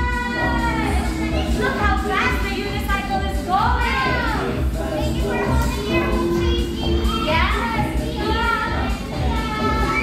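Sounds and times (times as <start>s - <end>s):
background music: 0.0s - 10.0s
children calling and squealing: 3.7s - 10.0s.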